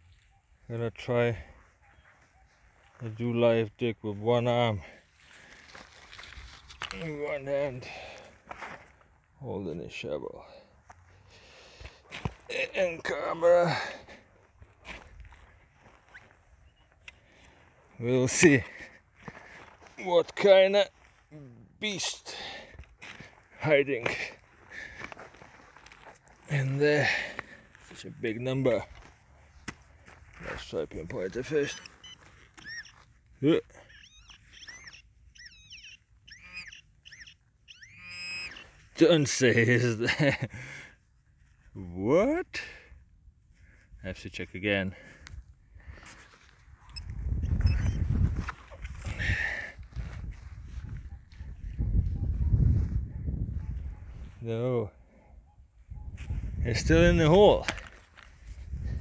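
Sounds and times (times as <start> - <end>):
footsteps on grass: 5.0 - 7.3, 14.2 - 18.0, 18.6 - 21.3, 22.4 - 33.4, 48.0 - 51.8.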